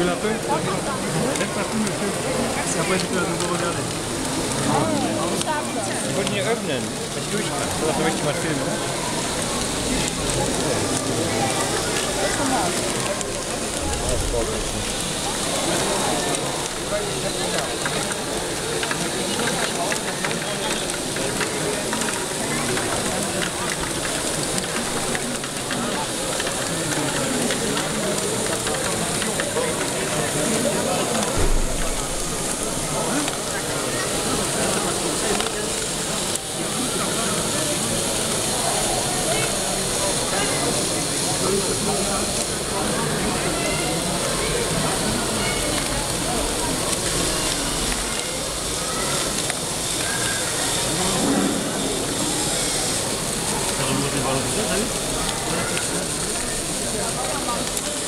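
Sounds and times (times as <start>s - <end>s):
people chattering: 0.0s - 58.0s
thump: 31.4s - 31.9s.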